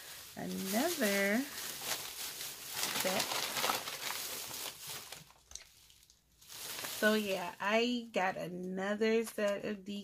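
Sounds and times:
shopping bags crinkling: 0.0 - 7.6.

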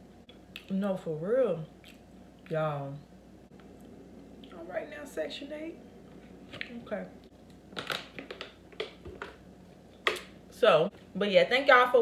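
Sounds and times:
woman speaking: 0.7 - 1.7, 2.5 - 3.1, 4.5 - 5.8, 6.6 - 7.2, 10.6 - 12.0.

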